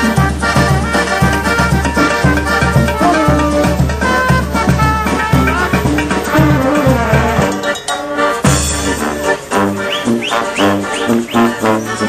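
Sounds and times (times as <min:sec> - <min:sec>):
sousaphone bass notes: 0:00.0 - 0:07.8, 0:08.4 - 0:12.0
brass band playing: 0:00.0 - 0:12.0.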